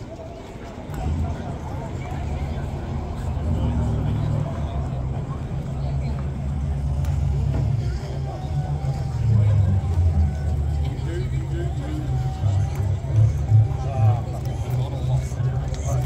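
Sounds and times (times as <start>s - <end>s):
crowd chatter: 0.0s - 16.0s.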